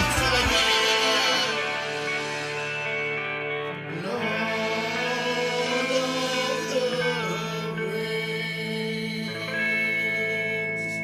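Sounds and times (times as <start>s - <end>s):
electric guitar notes ringing: 0.0s - 11.0s.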